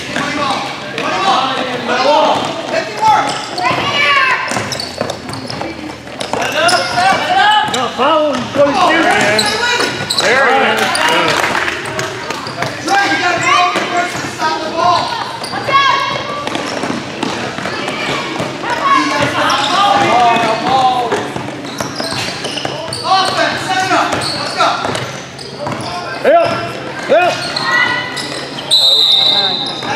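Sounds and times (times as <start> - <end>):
voices and shouts in gym: 0.0 - 29.9
basketball bouncing on court: 2.2 - 10.2.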